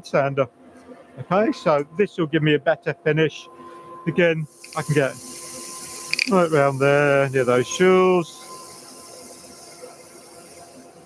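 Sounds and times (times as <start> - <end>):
lathe spinning: 4.4 - 11.0
rotary sander hissing on wood: 4.4 - 11.0.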